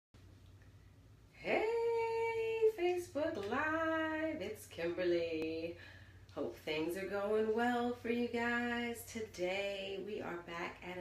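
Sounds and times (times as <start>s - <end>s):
woman singing a greeting: 1.4s - 5.8s, 6.4s - 11.0s.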